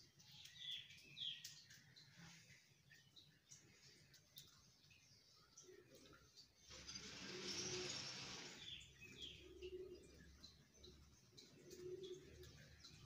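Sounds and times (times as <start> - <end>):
pigeon cooing softly: 11.4 - 13.0.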